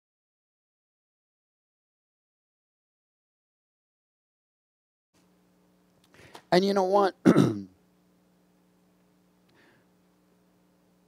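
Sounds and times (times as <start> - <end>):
faint steady hum: 5.2 - 11.0
man clearing his throat: 7.2 - 7.8.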